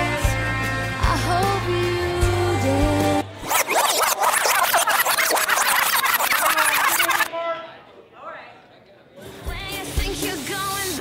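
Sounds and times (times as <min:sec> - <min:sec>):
brief pitched sounds: 0:03.4 - 0:07.3
record scratch and rewind effect: 0:03.4 - 0:07.3.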